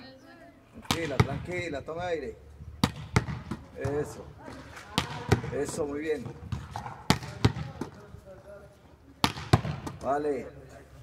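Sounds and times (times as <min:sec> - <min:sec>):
volleyball smacking: 0:00.8 - 0:01.6, 0:02.8 - 0:08.1, 0:09.2 - 0:10.2.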